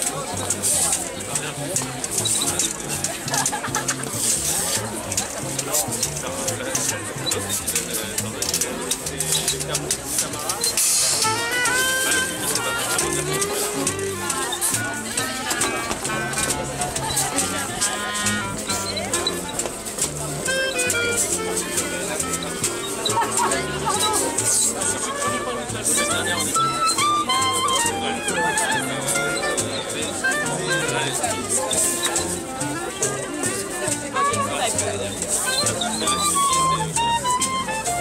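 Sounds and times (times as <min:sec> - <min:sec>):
crowd chatter: 0:00.0 - 0:38.0
double bass walking line: 0:00.0 - 0:38.0
reed instrument melody: 0:00.0 - 0:38.0
swing jazz band: 0:00.0 - 0:38.0.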